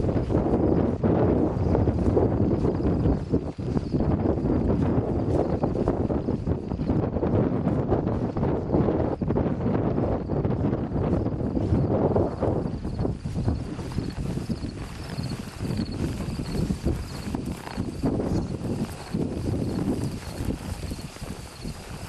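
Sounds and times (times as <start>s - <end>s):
horse footfalls in dry grass: 0.0s - 8.7s, 9.8s - 22.0s
wind buffeting microphone: 0.0s - 22.0s.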